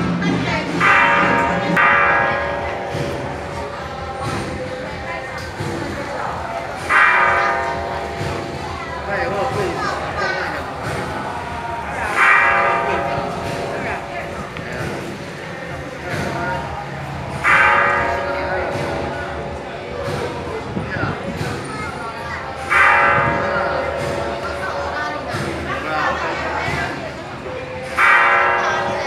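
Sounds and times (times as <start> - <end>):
bell-like metal percussion ringing: 0.8 - 20.6, 21.7 - 27.1.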